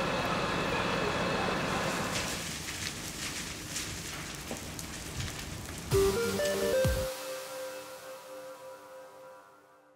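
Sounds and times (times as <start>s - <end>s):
car fire crackling: 0.0s - 8.6s.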